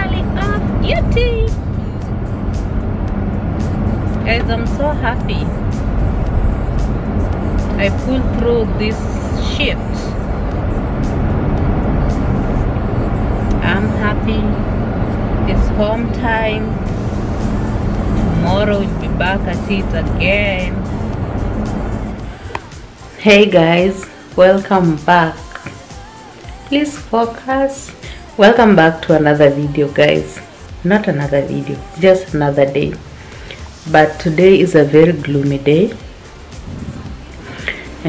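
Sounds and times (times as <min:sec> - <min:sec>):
car road noise rumble: 0:00.0 - 0:38.0
music playing: 0:00.0 - 0:38.0
person singing: 0:25.0 - 0:28.7, 0:29.6 - 0:33.8.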